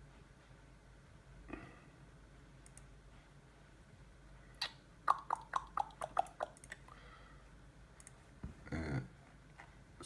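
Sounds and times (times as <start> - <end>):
faint computer mouse click: 2.6 - 2.9.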